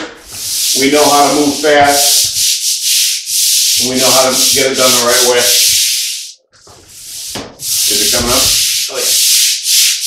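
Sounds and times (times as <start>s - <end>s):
scrub brush scrubbing tile grout: 0.2s - 10.0s.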